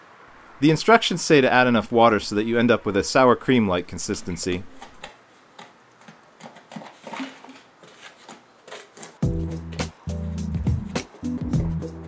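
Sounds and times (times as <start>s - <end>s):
stick stirring mortar in bucket: 4.8s - 9.9s
music with steady beat: 9.2s - 12.0s.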